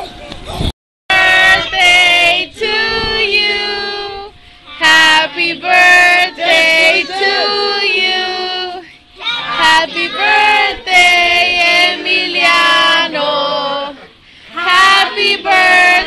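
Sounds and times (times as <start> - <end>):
women and children singing: 1.1 - 16.0.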